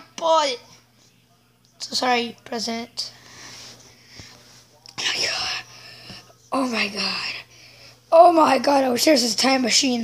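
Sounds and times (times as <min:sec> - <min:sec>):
person whispering: 0:04.9 - 0:07.5.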